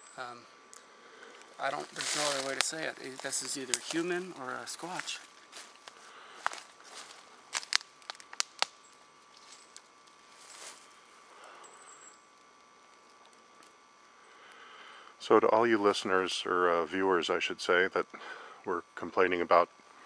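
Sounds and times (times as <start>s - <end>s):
faint steady hiss: 0.0s - 20.0s
twigs snapping and cracking: 0.7s - 4.3s, 4.9s - 10.7s
footsteps through undergrowth: 1.3s - 11.2s.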